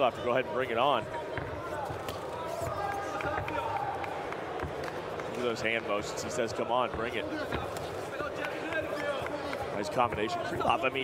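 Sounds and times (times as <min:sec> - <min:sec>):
crowd shouting: 0:01.6 - 0:04.9.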